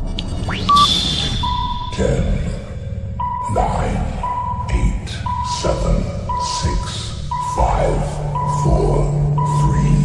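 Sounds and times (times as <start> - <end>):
high beeping tone: 0.4 - 10.0.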